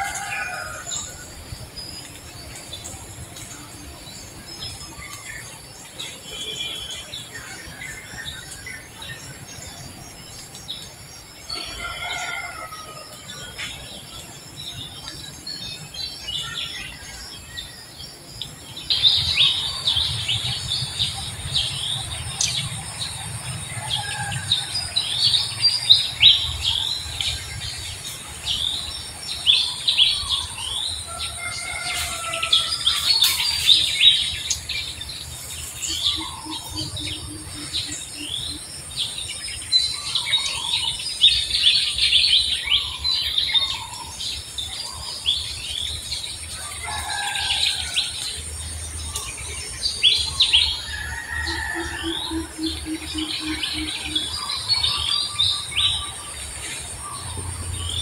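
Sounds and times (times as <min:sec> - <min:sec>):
songbirds chirping: 0:00.0 - 0:58.0.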